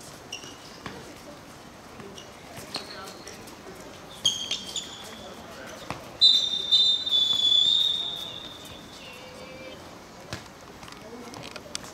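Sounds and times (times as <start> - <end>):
referee whistle blast: 6.2 - 8.7.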